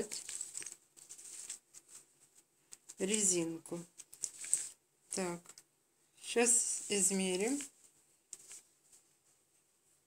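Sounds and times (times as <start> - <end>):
hands rustling knitted fabric: 0.0 - 5.4, 6.4 - 10.0.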